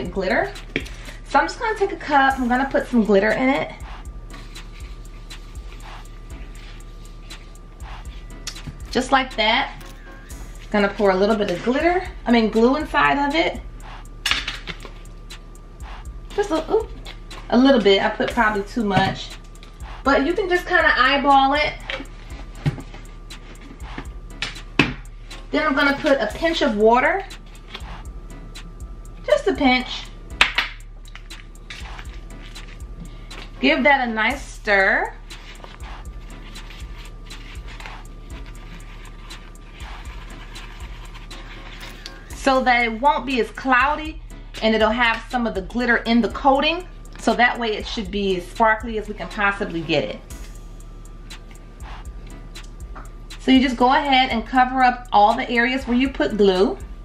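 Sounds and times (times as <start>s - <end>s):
faint background music: 0.0s - 57.0s
glitter clicking and tapping: 21.5s - 33.6s, 50.3s - 54.3s.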